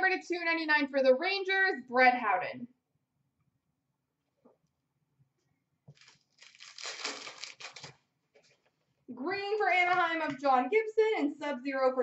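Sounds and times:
foil wrapper crinkling and tearing: 5.9 - 8.1.

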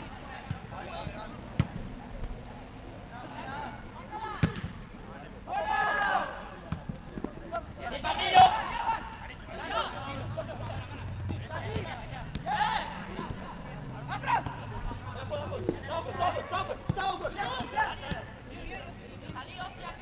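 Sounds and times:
players shouting: 5.4 - 6.6, 7.5 - 20.0.

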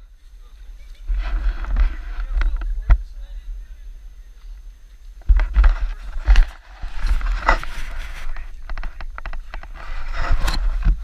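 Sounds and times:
scraping noises: 0.0 - 3.4, 4.4 - 11.0
wind rumble: 0.0 - 11.0.

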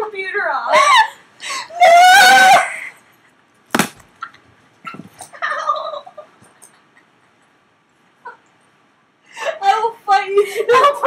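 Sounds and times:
women laughing: 10.4 - 11.0.

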